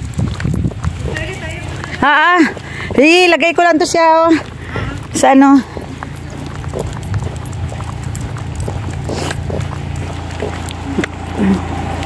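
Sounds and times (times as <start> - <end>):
footsteps on tarmac: 0.0 - 12.0
steady low rumble: 0.0 - 12.0.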